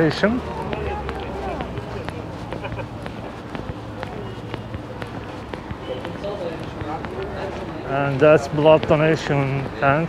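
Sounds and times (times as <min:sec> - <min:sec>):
footsteps on stone paving: 0:00.0 - 0:10.0
people talking: 0:00.0 - 0:10.0.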